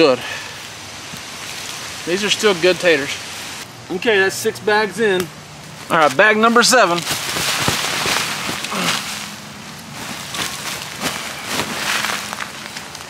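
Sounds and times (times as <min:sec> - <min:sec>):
tarp crinkling: 0:05.8 - 0:13.0
fabric bag rustling: 0:07.0 - 0:13.0
soil spilling onto tarp: 0:10.0 - 0:13.0.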